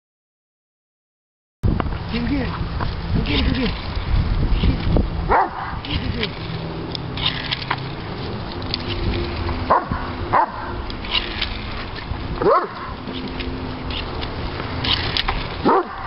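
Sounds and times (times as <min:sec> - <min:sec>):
low hum: 0:01.6 - 0:16.0
dog yelping: 0:05.3 - 0:05.8, 0:09.7 - 0:10.8, 0:12.4 - 0:13.0, 0:15.6 - 0:16.0.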